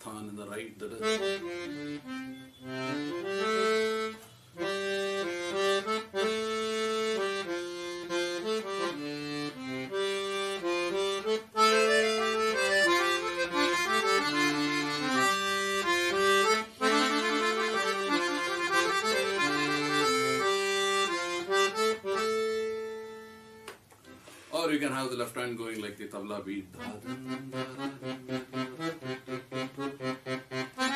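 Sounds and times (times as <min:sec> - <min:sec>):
accordion melody: 0:00.5 - 0:30.9.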